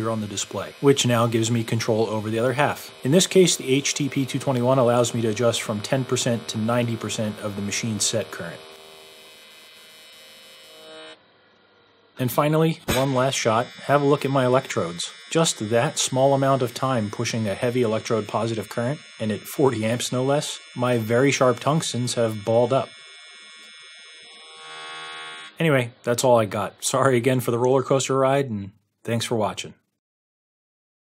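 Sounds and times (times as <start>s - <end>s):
welding arc buzzing: 0.0s - 27.4s.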